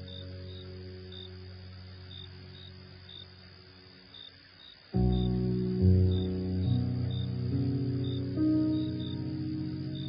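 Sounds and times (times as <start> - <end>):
crickets chirping: 0.0 - 10.0
faint steady hiss: 0.0 - 10.0
slow ambient music: 0.0 - 10.0.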